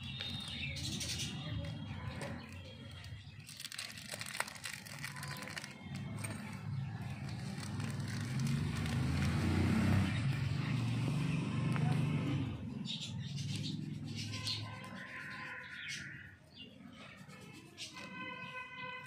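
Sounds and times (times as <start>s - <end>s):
vehicle engine running: 5.5s - 14.3s.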